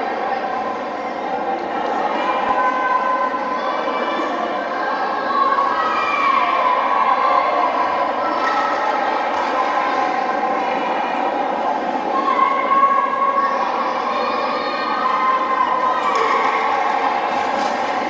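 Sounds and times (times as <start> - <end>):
spectator crowd voices: 0.0 - 18.0.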